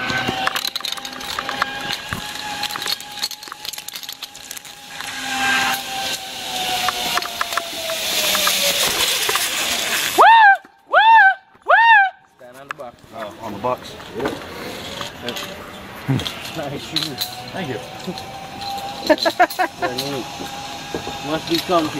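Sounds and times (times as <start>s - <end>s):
clips clinking and knocking: 0.0s - 5.2s, 16.2s - 21.9s
zipline trolley whining on cable: 0.0s - 12.3s, 13.1s - 21.9s
loud rising and falling calls: 4.8s - 12.3s.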